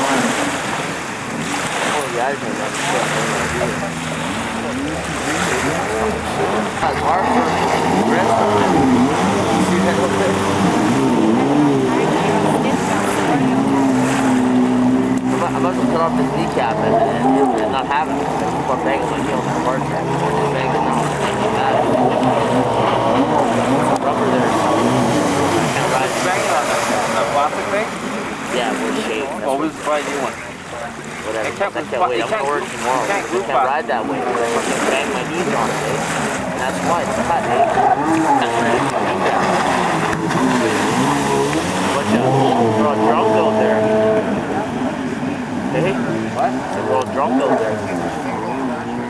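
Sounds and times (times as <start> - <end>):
jet ski engines whining: 0.0 - 49.0.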